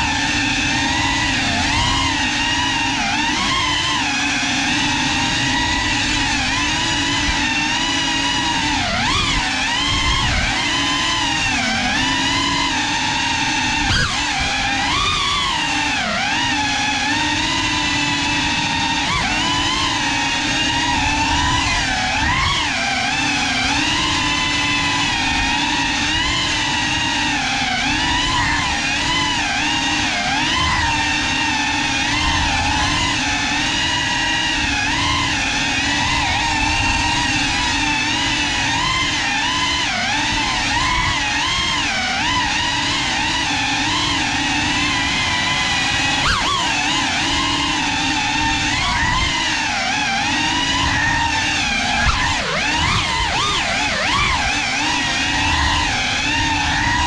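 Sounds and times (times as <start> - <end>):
drone motors whining: 0.0 - 57.0.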